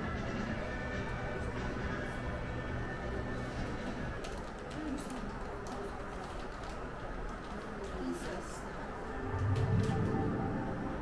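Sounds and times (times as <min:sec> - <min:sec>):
faint indistinct voices: 0:00.0 - 0:11.0
room hum: 0:08.3 - 0:11.0.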